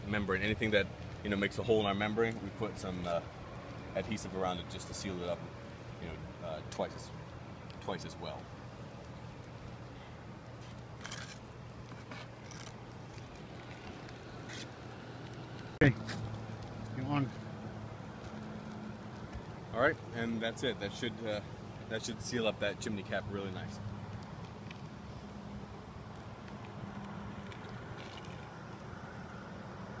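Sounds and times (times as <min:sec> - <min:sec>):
low outdoor rumble with hum: 0:00.0 - 0:30.0.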